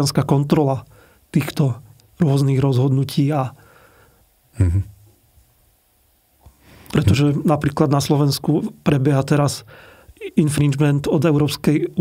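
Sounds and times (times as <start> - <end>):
man's brief voiced syllable: 4.6 - 4.9.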